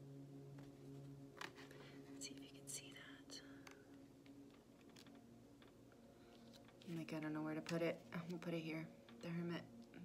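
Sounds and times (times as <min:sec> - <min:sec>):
low hum: 0:00.0 - 0:10.0
card clicks and rustles: 0:01.3 - 0:02.0, 0:03.6 - 0:07.0.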